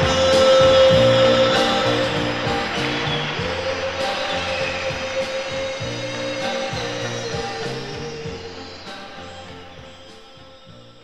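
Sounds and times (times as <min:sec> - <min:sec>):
pop song with drum beat: 0:00.0 - 0:11.0
walking bass line: 0:00.0 - 0:11.0.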